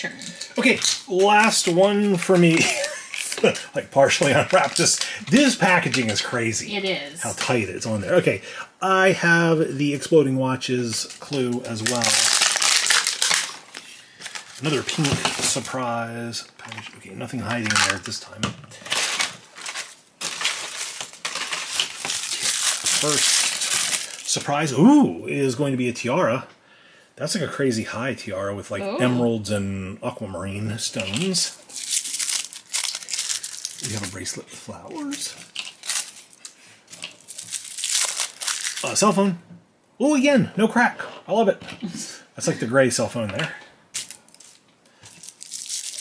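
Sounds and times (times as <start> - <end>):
plastic wrapper crinkling: 0.0 - 7.5, 10.8 - 24.5, 30.9 - 39.2, 43.3 - 46.0.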